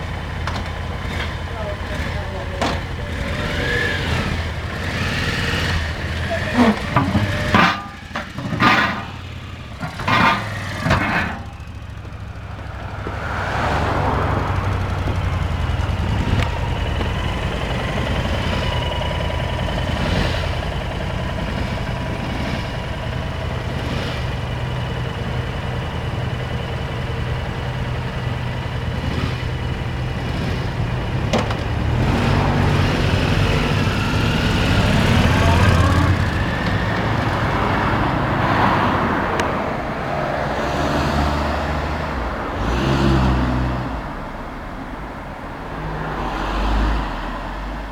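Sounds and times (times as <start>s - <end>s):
motorcycle engine idling: 0.0s - 38.2s
motorcycle throttle blips: 0.1s - 13.2s, 14.0s - 37.6s.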